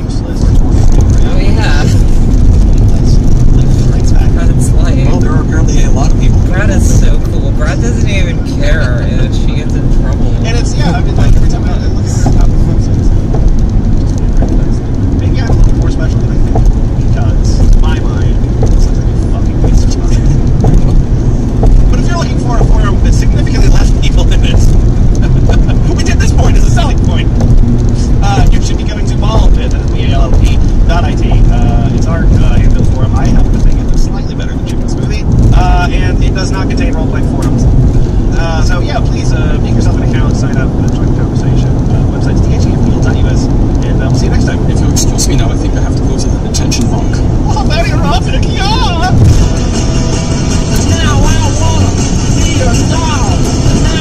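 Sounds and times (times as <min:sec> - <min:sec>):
car cabin road rumble: 0:00.0 - 0:54.0.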